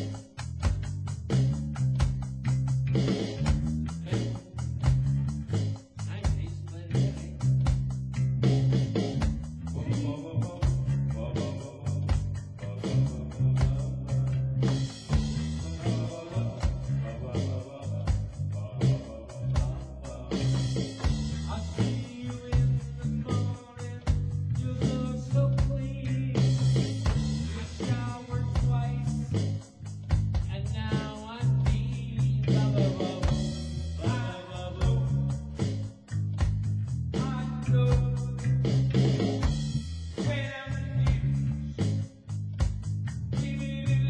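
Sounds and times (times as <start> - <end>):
drums: 0.0 - 44.0
electric guitar: 0.0 - 44.0
heavy bass line: 0.0 - 44.0.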